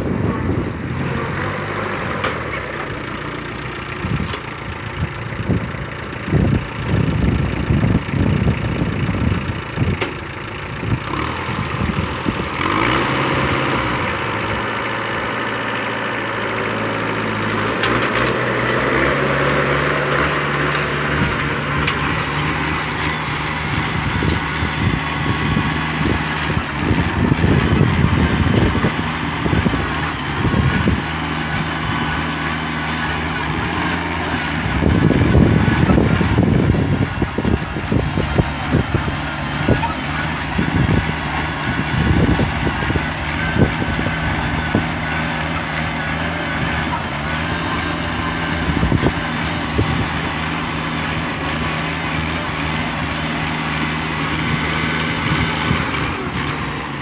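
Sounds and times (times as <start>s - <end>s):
tractor diesel engine running: 0.0s - 57.0s
cultivator tines in dry soil: 0.3s - 57.0s.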